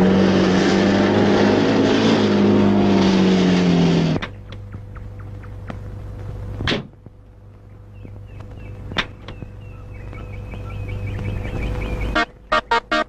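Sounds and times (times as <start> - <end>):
car engine rumble: 0.0 - 13.0.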